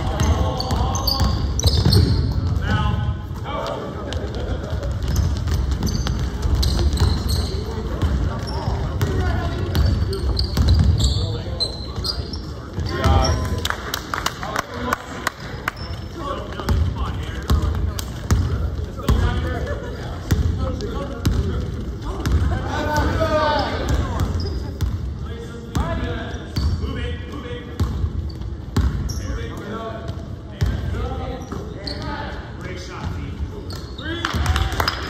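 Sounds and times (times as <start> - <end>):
basketball bouncing on hardwood floor: 0.1 - 2.7, 5.0 - 11.0.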